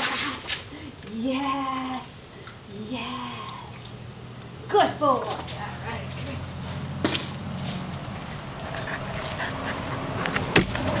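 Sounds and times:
steady low hum: 0.0 - 11.0
dog panting: 8.2 - 10.4.

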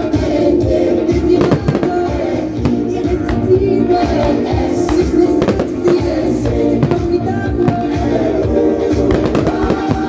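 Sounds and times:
loud music over speakers: 0.0 - 10.0
fireworks bangs and crackle: 1.3 - 3.4, 4.2 - 8.2, 9.0 - 10.0.

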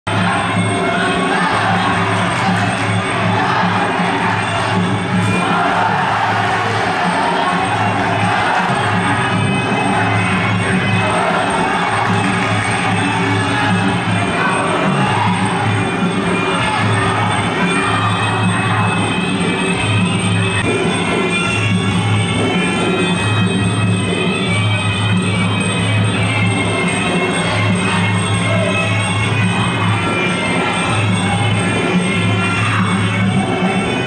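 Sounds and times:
crowd cheering: 0.1 - 22.3
traditional fight music: 0.1 - 34.0.

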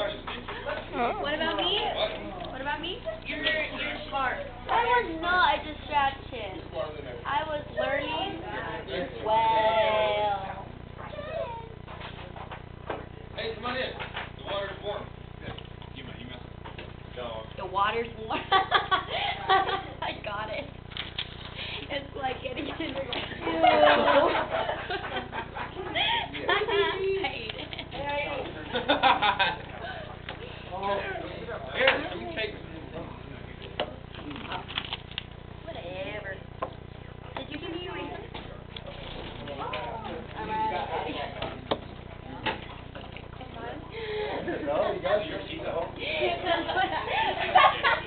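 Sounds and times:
students chattering: 0.0 - 11.7, 35.6 - 48.0
steady low hum: 0.0 - 48.0.

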